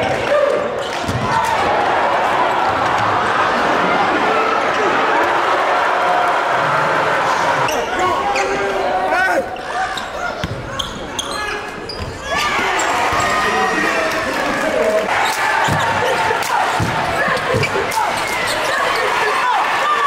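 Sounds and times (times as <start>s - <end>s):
echoing voices: 0.0s - 20.0s.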